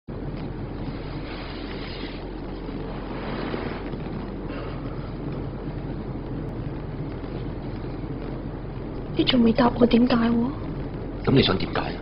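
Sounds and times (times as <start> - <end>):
constant low hum: 0.1 - 12.0
steady background noise: 0.1 - 12.0.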